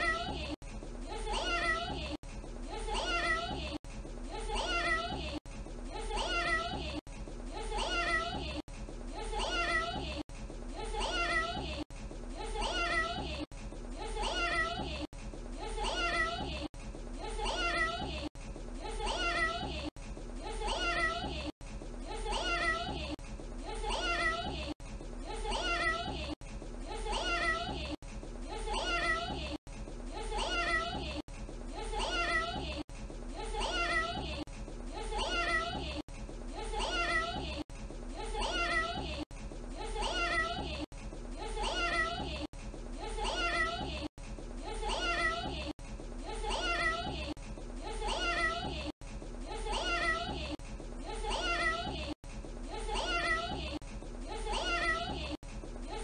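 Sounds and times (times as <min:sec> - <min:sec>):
child saying meow: 0:54.5 - 0:55.2.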